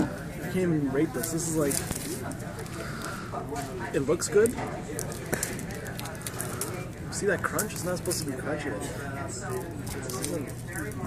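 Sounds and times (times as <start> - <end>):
croissant crust crunching: 0.0 - 11.0
restaurant chatter: 0.0 - 11.0.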